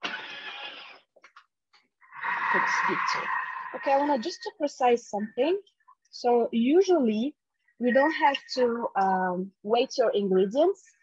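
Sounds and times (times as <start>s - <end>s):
food processor motor whirring: 0.0s - 1.0s.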